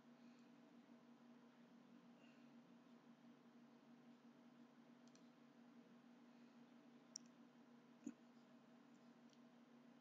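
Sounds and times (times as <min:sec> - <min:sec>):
faint low hum: 0:00.0 - 0:10.0
computer mouse clicks: 0:05.0 - 0:05.4, 0:07.1 - 0:07.4.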